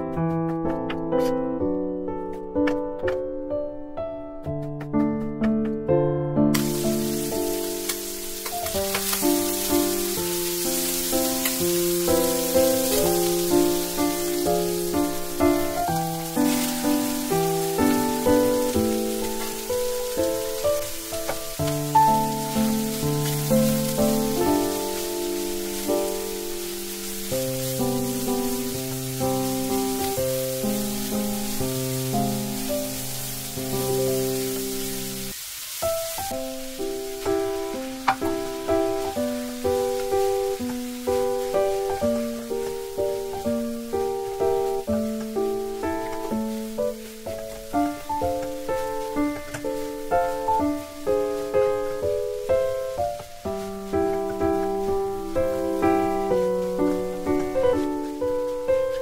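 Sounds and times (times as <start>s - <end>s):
bouncy instrumental music: 0.0s - 35.3s, 35.9s - 59.0s
food sizzling in a pan: 6.5s - 59.0s.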